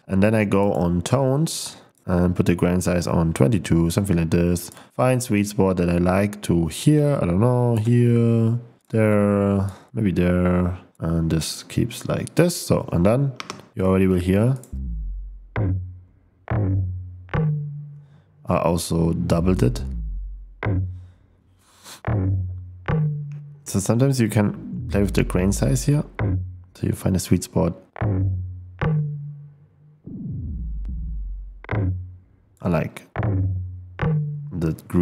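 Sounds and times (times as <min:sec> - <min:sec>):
grainy tom drum hits: 0:14.7 - 0:15.9
low tone sliding downward: 0:14.7 - 0:18.2, 0:19.3 - 0:21.1, 0:22.1 - 0:23.7, 0:24.5 - 0:26.7, 0:28.0 - 0:32.3, 0:33.2 - 0:34.6.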